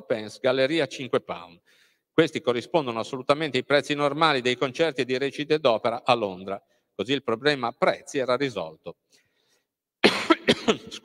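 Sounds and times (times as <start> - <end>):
man coughing: 10.0 - 11.0.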